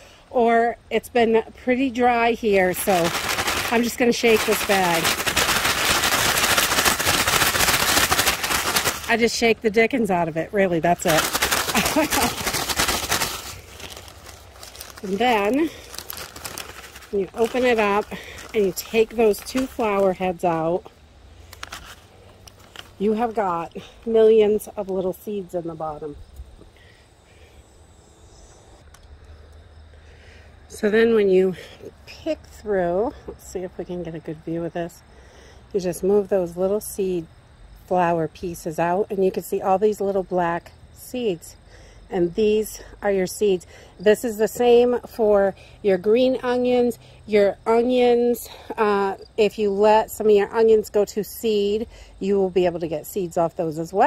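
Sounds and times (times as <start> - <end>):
insects trilling: 0.8 - 54.0
paper bag shaken with dry seed heads: 2.0 - 20.9, 21.5 - 24.6.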